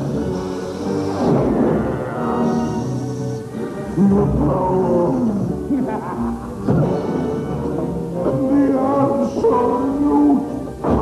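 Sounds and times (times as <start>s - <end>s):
orchestral music: 0.0s - 11.0s
growling animal-like roar: 0.8s - 4.7s.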